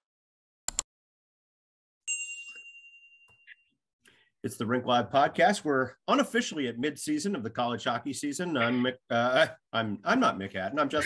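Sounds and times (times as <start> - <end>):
notification bell ding: 2.1 - 3.6.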